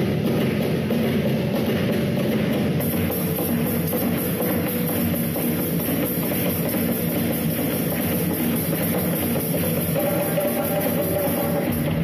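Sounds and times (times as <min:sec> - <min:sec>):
drum kit: 0:00.0 - 0:12.0
hand drums: 0:00.0 - 0:12.0.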